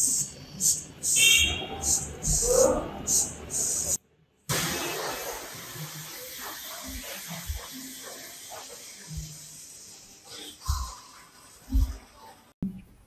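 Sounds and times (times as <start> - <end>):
steady hiss: 0.0 - 12.6.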